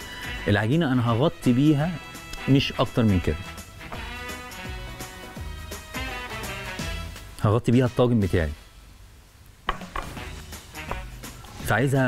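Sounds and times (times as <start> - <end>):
quiet background music: 0.0 - 8.9, 9.6 - 12.0.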